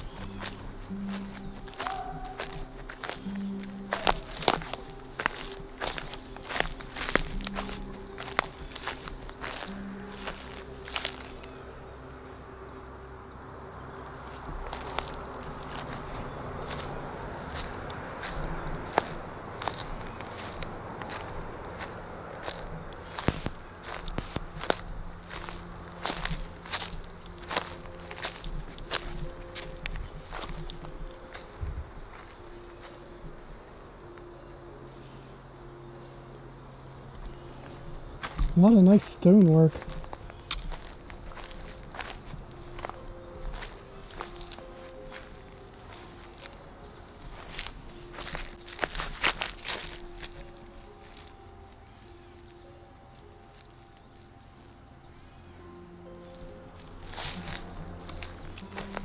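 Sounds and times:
footsteps through grass and twigs: 0:00.0 - 0:12.0, 0:13.8 - 0:34.3, 0:37.1 - 0:52.4, 0:55.6 - 0:59.0
insect chorus: 0:00.0 - 0:59.0.

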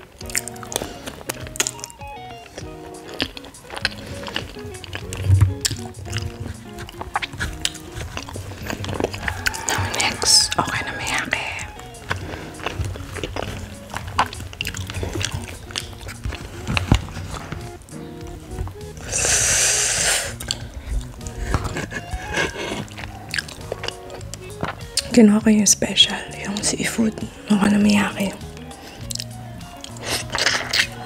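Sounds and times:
background music: 0:00.0 - 0:31.0
close-up chewing: 0:00.0 - 0:31.0.

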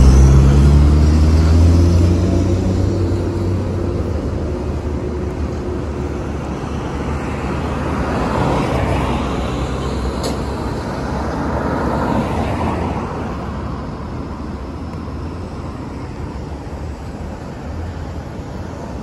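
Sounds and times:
cars passing: 0:00.0 - 0:19.0.

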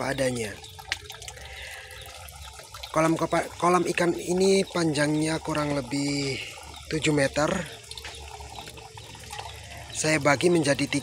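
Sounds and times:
faint running water: 0:00.0 - 0:11.0.

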